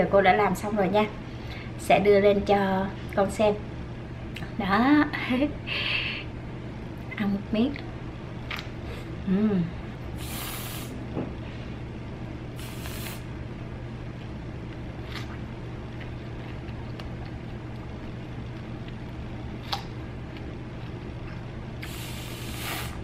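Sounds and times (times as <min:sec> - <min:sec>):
steady low hum: 0:00.0 - 0:23.0
aerosol whipped cream spraying: 0:10.2 - 0:10.9, 0:12.6 - 0:13.2.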